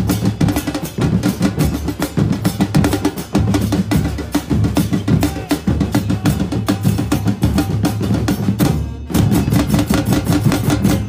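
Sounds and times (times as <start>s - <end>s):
drums beating fast rhythm: 0.0s - 11.0s.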